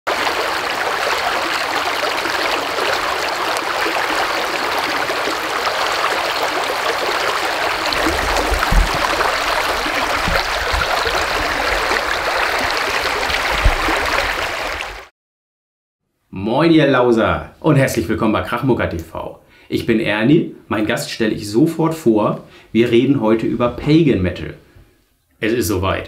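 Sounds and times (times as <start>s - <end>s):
stream rushing and rippling: 0.1s - 15.1s
short low thuds: 7.9s - 12.0s.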